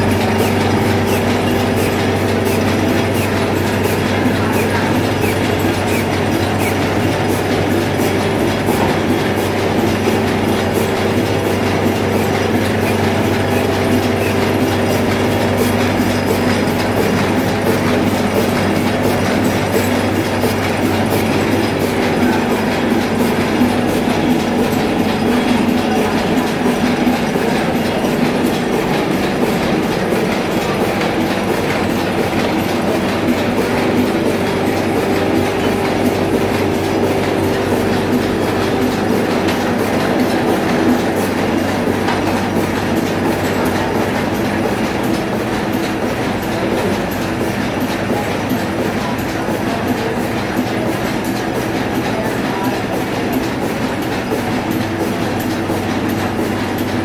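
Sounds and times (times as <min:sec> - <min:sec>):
printing press clattering: 0:00.0 - 0:57.0.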